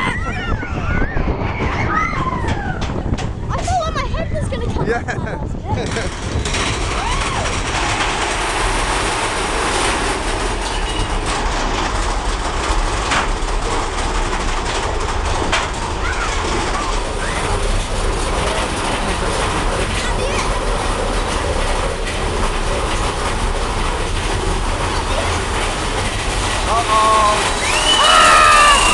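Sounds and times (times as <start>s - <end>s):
roller coaster wheels rumbling: 0.0s - 28.9s
track clacks: 0.0s - 28.9s.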